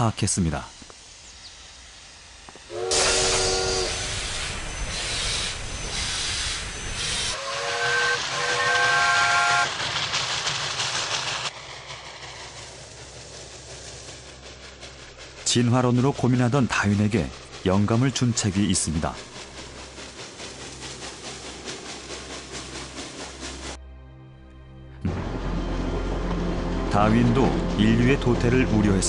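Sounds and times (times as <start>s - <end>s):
hiss of escaping steam: 0.2s - 23.8s
locomotive running noise: 2.2s - 23.8s, 25.0s - 29.0s
steam locomotive whistle: 2.7s - 9.8s.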